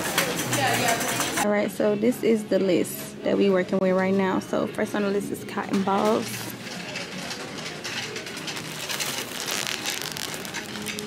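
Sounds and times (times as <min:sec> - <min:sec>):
plastic bag crinkling: 0:08.1 - 0:11.0.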